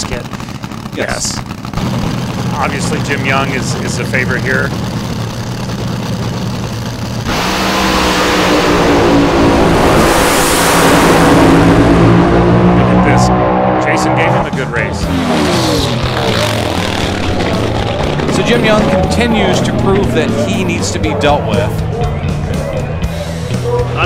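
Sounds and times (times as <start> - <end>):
voices: 0.0 - 5.2, 12.7 - 24.0
dragster engines roaring: 0.0 - 24.0.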